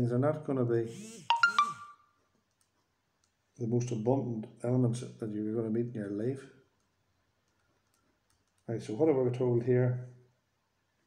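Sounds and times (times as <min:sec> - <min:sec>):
message notification chime: 0:01.3 - 0:02.0.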